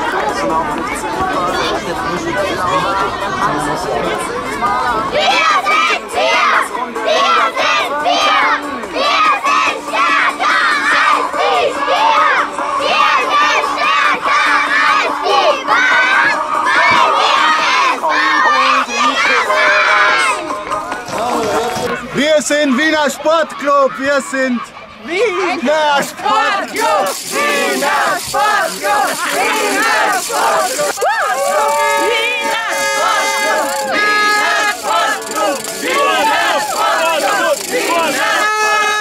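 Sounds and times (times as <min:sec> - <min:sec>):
children shouting and cheering: 0:00.0 - 0:39.0.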